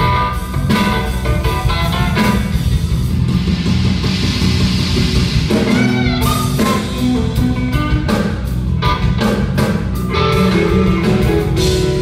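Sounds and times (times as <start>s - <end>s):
cymbals: 0.0s - 8.3s
bass guitar: 0.0s - 12.0s
drums: 0.0s - 12.0s
lead electric guitar notes: 5.5s - 12.0s.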